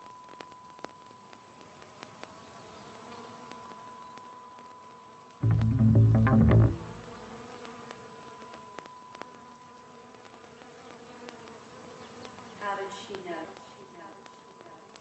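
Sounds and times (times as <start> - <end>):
cluster of falling tones: 5.4 - 7.3
loud low buzz: 5.4 - 7.3.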